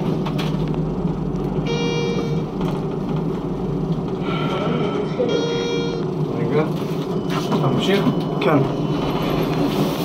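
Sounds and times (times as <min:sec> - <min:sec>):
elevator ride rumble: 0:00.0 - 0:10.0.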